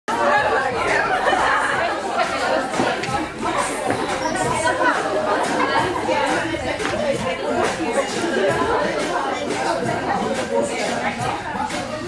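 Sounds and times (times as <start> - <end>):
overlapping chatter in large room: 0.1 - 12.0.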